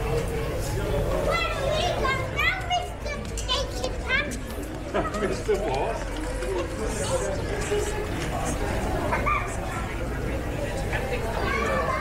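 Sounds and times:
crowd chatter and bustle: 0.0 - 12.0.

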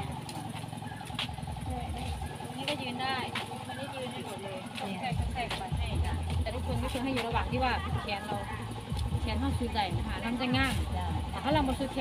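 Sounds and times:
low motor hum: 0.0 - 12.0
voices: 0.0 - 12.0.

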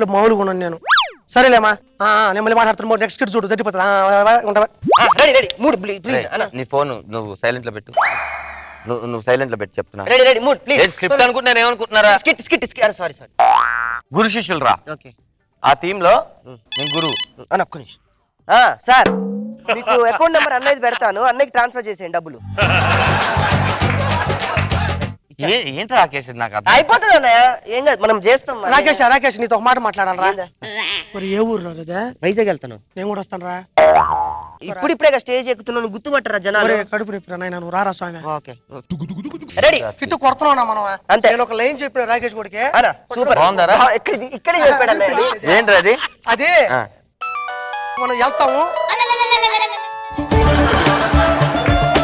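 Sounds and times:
upward-gliding boing sound effect: 0.8 - 1.2, 19.0 - 19.9, 33.8 - 34.6
comic falling tone: 0.8 - 1.3.

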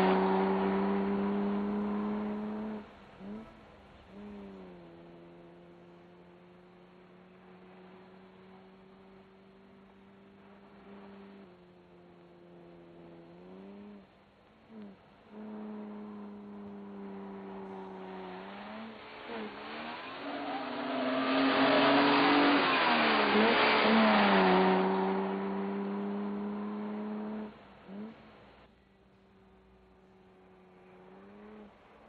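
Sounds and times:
car speeding past: 0.0 - 28.5, 29.4 - 32.0
car engine revving: 0.0 - 32.0.

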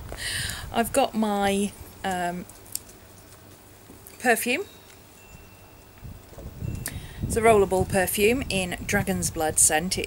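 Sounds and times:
wind rumble on microphone: 0.0 - 2.4, 5.3 - 10.0.

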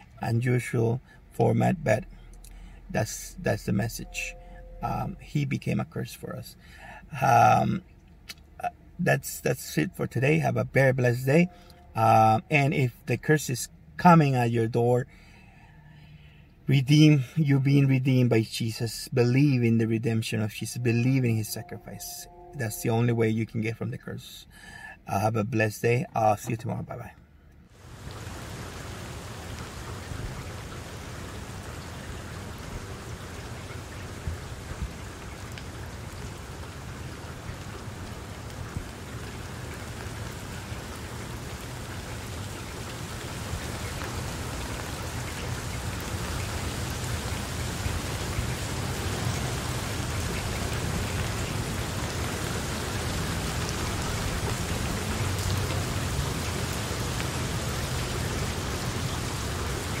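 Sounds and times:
steady rain: 0.0 - 22.9, 27.7 - 60.0.

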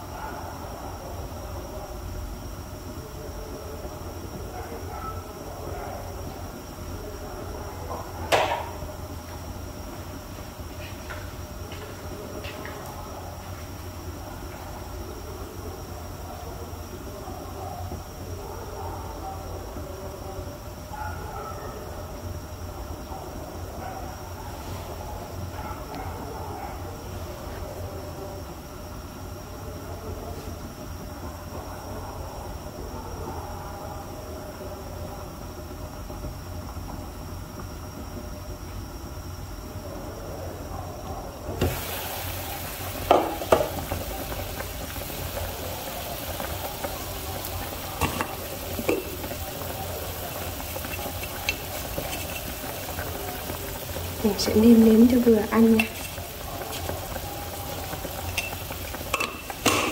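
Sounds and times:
soup bubbling in pot: 41.4 - 59.9
glass lid and spoon clinking: 58.4 - 58.6.

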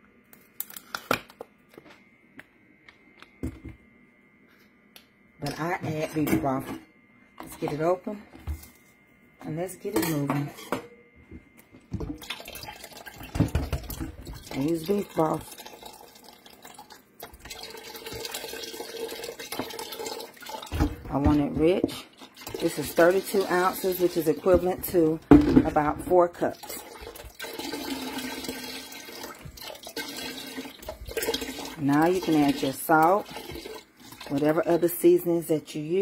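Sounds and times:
liquid pouring into a pot: 12.0 - 21.1, 22.1 - 24.6, 25.3 - 35.0.

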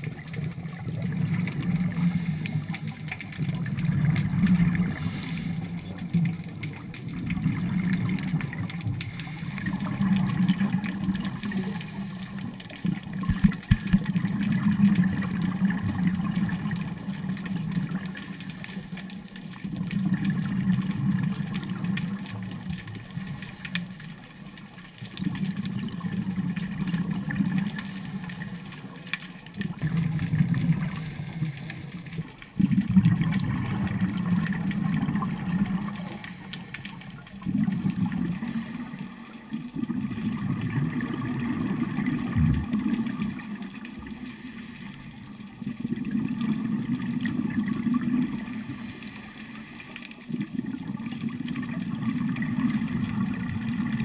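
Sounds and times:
exhaled bubbles underwater: 0.0 - 54.0.

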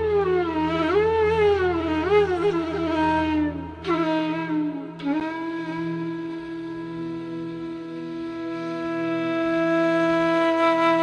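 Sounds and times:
flute melody with bending notes: 0.0 - 11.0.

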